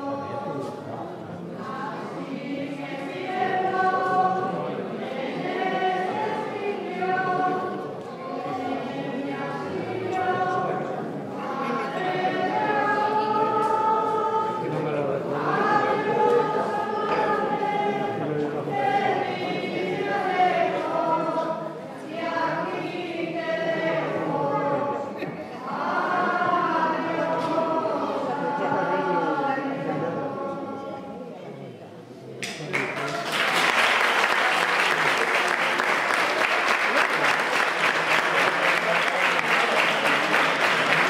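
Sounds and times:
group singing a hymn: 0.0s - 31.4s, 33.3s - 41.0s.

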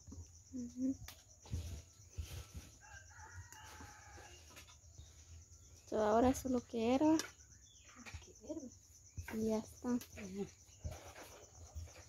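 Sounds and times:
distant rooster crowing: 2.4s - 5.0s.

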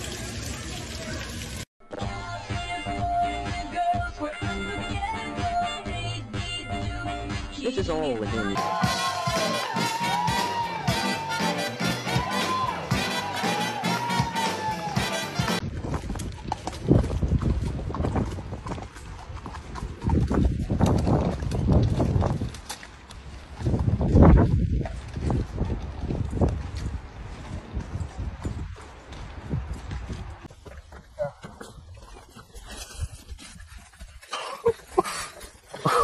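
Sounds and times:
music: 1.8s - 15.6s
horse hooves clip-clopping on mud: 15.0s - 36.0s
person breathing hard: 34.3s - 36.0s.

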